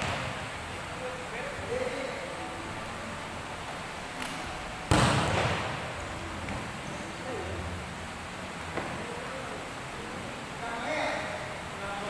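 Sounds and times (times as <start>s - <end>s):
volleyball spike smack: 4.2s - 5.8s.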